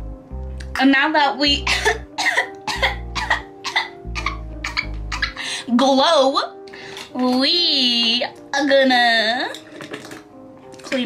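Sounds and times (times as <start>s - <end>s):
background music with bass: 0.0s - 8.3s
woman coughing: 1.6s - 5.4s.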